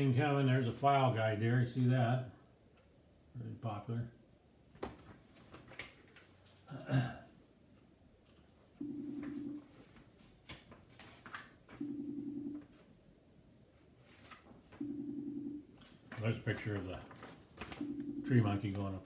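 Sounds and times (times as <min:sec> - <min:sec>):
magazine pages turning: 0:05.0 - 0:06.3, 0:10.5 - 0:11.6, 0:14.0 - 0:14.7, 0:15.8 - 0:17.8
phone buzzing: 0:08.8 - 0:09.7, 0:11.8 - 0:12.7, 0:14.8 - 0:15.7, 0:17.8 - 0:18.7.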